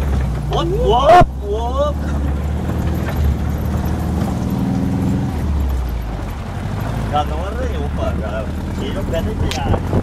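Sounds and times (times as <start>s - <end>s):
vehicle engine low rumble: 0.0s - 10.0s.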